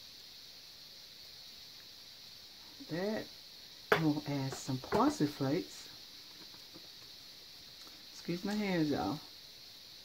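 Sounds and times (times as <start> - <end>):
spice shaker ticks: 6.1 - 10.0.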